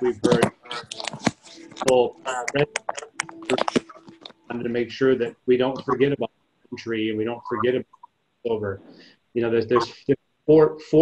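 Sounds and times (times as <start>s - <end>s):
person talking: 0.0s - 8.8s, 9.4s - 11.0s.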